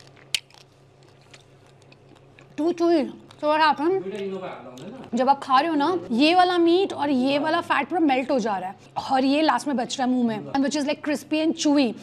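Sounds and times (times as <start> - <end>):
person chewing: 0.0 - 5.2.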